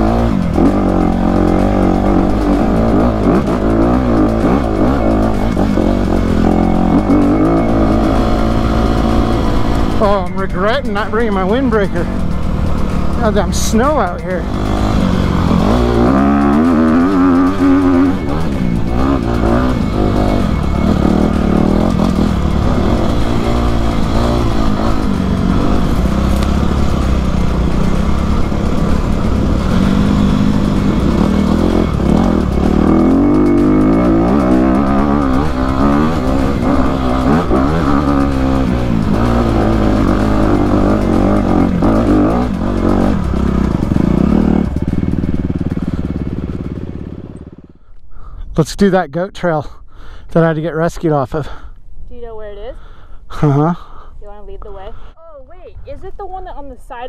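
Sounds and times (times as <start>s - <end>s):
dirt bike engine revving: 0.0s - 48.3s, 52.3s - 55.1s.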